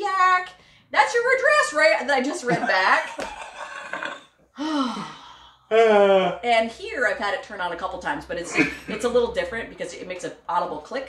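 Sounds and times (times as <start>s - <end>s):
woman laughing: 2.3s - 4.3s, 8.5s - 9.0s
woman sighing: 4.6s - 5.5s.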